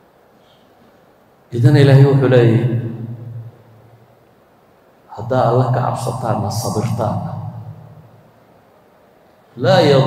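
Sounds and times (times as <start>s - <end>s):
faint room noise hiss: 0.0s - 10.0s.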